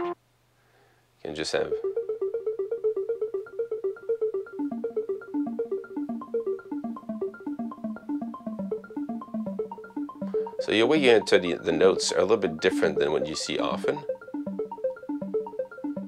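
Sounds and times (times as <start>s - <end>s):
looped synth notes: 1.5s - 16.0s.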